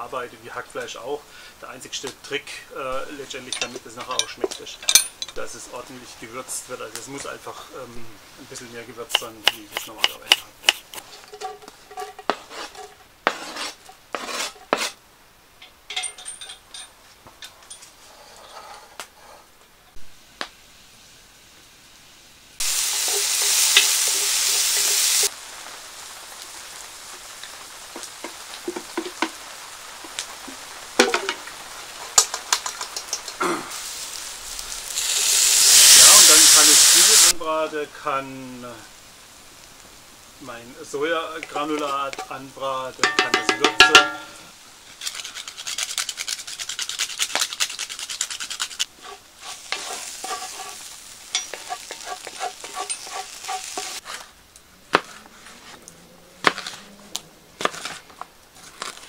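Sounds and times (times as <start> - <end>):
onion sizzling in hot fat: 0.0 - 15.6, 19.9 - 59.0
wooden spatula scraping a pot: 9.0 - 15.0, 17.9 - 19.5, 22.7 - 25.3, 41.3 - 42.4, 45.0 - 59.0
knife chopping on wooden board: 9.1 - 11.0.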